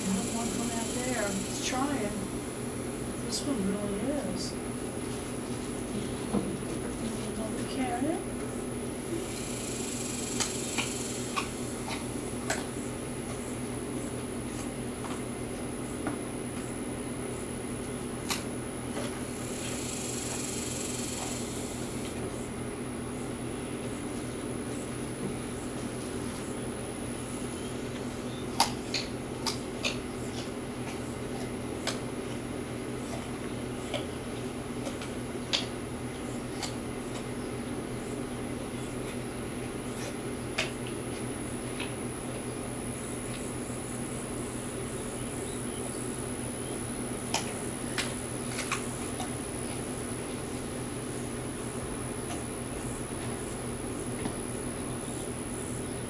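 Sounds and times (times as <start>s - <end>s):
mechanical hum: 0.0s - 56.0s
deer chewing carrots: 23.7s - 44.9s.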